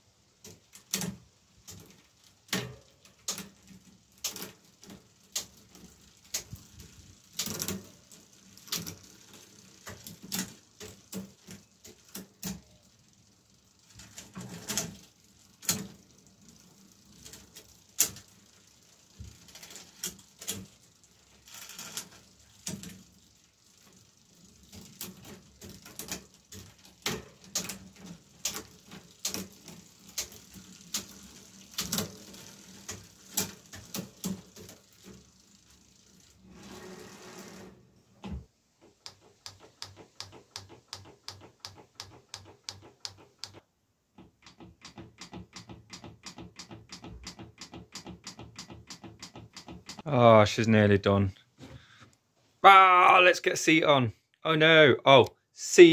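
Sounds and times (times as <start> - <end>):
bicycle chain running: 0.6 - 37.6
light clicks and ticks: 38.9 - 43.6.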